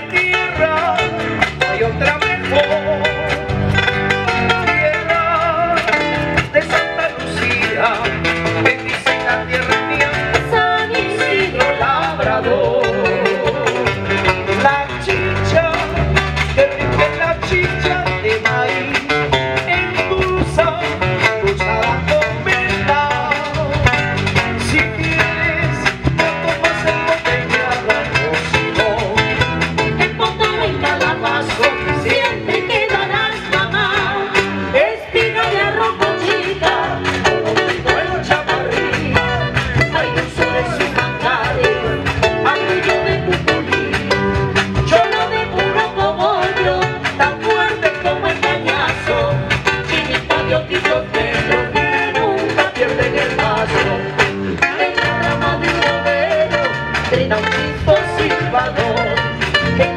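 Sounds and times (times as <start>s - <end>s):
acoustic guitars: 0.0s - 59.9s
percussion dance rhythm: 0.0s - 59.9s.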